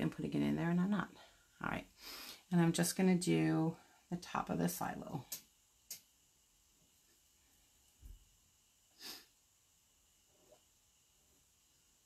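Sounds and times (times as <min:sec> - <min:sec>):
sharp exhale through nose: 0:09.0 - 0:09.4.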